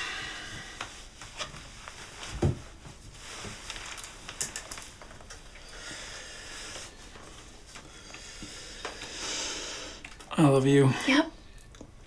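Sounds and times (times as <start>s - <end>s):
hiss of breath or cloth: 8.3s - 10.0s.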